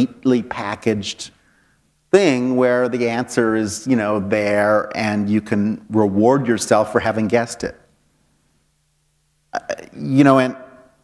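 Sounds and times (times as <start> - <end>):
man talking: 0.0 - 1.4, 2.1 - 7.9, 9.5 - 10.8
faint low hum: 0.0 - 11.0.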